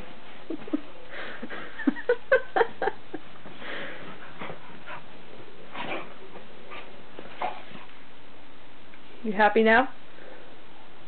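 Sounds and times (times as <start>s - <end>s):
bedding rustling: 0.0s - 8.3s.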